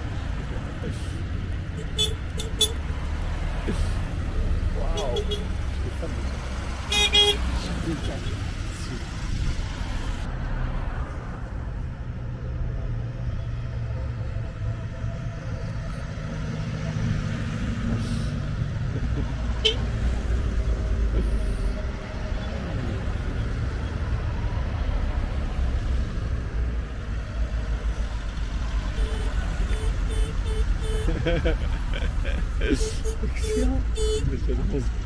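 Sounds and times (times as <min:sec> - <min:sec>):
cars driving past: 0:00.0 - 0:35.0.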